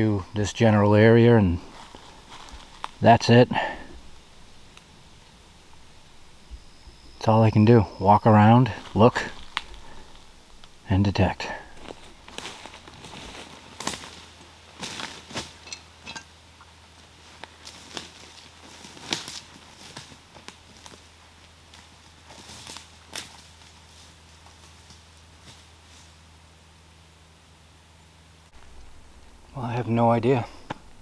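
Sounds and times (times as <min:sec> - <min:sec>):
footsteps crunching through dry leaves: 0:01.2 - 0:07.0, 0:08.7 - 0:15.6, 0:17.1 - 0:26.2.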